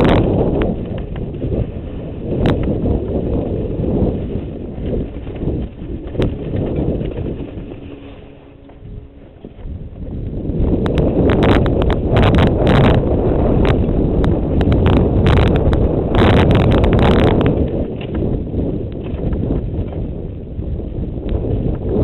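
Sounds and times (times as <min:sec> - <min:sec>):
bike rattling and knocking: 0:00.0 - 0:22.0
bike tyres on dirt: 0:00.0 - 0:22.0
wind buffeting microphone: 0:00.0 - 0:22.0.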